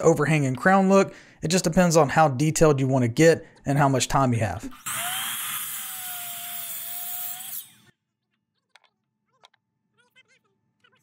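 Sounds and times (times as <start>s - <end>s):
miter saw cutting wood: 4.7s - 7.9s.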